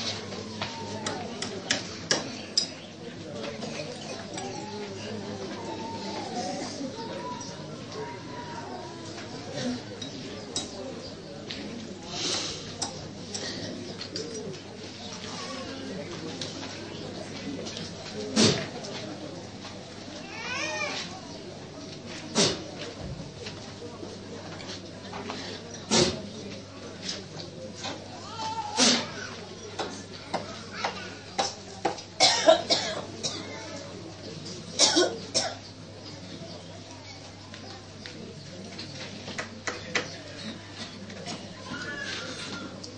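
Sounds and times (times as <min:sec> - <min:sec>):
murmur of voices: 0:00.0 - 0:42.9
person coughing hard: 0:32.2 - 0:33.4, 0:34.8 - 0:35.6.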